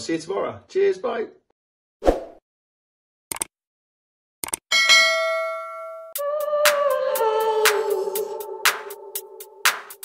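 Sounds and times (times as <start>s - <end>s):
bell ding: 4.7s - 6.2s.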